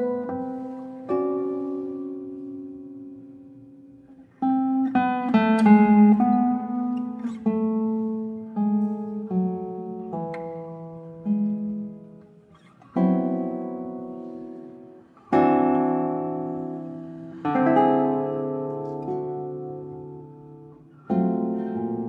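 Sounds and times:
solo classical guitar: 0.0s - 22.0s.

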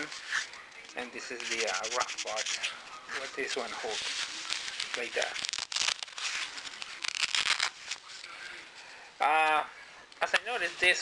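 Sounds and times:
fabric rustling: 0.0s - 8.3s
velcro rasping: 1.2s - 8.0s.

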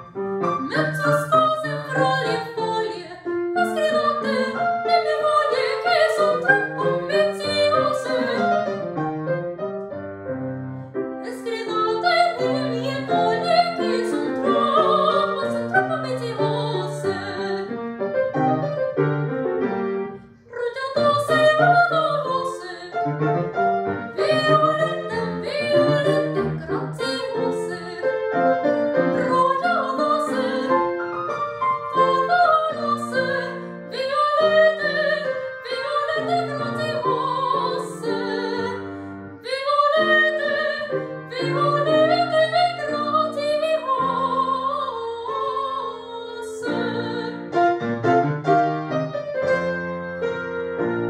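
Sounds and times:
soprano singing: 0.0s - 9.0s, 11.1s - 18.1s, 20.0s - 48.5s
grand piano: 0.0s - 51.0s.

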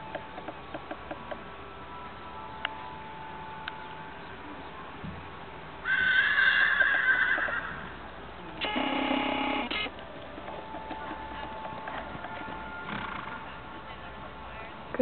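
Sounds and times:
horse whinnying: 5.9s - 7.8s.

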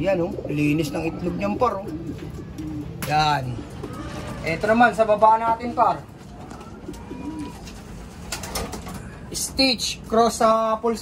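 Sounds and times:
pigeons cooing: 0.0s - 9.5s.

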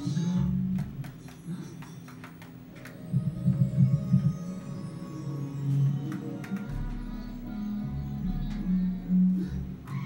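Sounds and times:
low hum: 2.9s - 6.0s.

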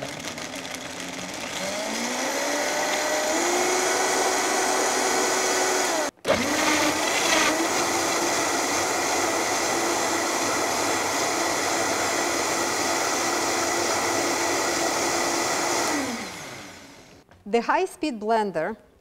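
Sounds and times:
blender motor whine: 0.0s - 17.2s.

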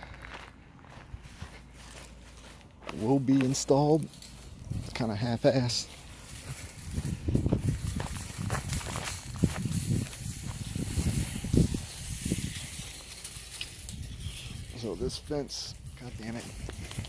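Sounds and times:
footsteps through dry leaves: 0.0s - 17.0s.

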